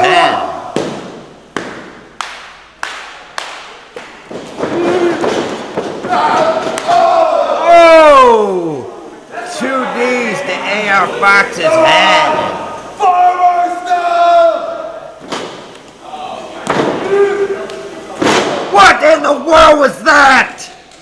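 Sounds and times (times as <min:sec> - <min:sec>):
man yelling: 0:00.0 - 0:00.7, 0:06.1 - 0:15.0, 0:18.7 - 0:20.7.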